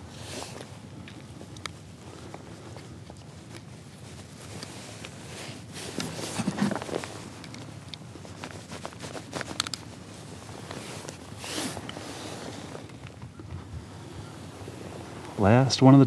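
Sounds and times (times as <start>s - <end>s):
rustling: 0.0s - 16.0s.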